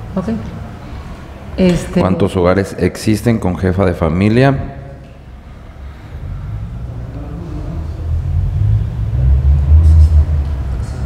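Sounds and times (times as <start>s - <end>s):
low rumble: 5.3s - 11.0s.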